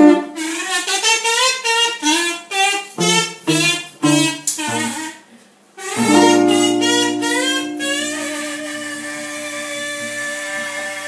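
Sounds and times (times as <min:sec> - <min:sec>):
guitar playing low notes: 0:03.0 - 0:05.0, 0:05.9 - 0:10.2
person singing a long held note: 0:05.8 - 0:11.0.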